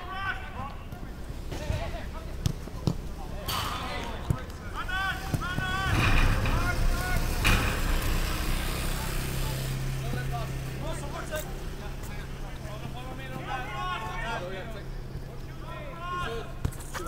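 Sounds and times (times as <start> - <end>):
players shouting: 0.0 - 17.0.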